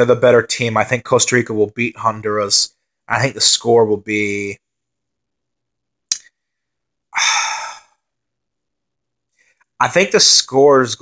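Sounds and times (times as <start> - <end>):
man sighing: 7.1 - 8.0.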